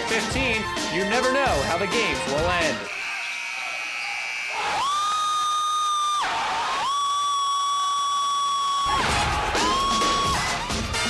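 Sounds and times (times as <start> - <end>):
crowd cheering: 2.6 - 11.0.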